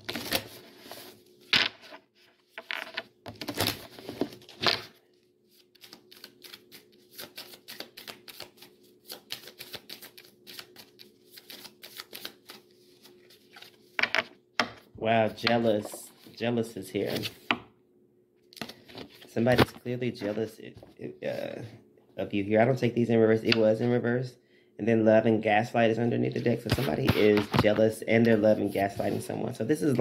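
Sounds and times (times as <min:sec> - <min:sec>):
cards being shuffled: 0:05.5 - 0:14.3, 0:26.4 - 0:29.4.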